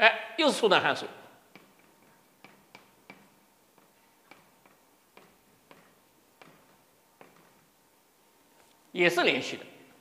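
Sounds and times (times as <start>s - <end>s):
chalk tapping on blackboard: 1.4s - 7.8s.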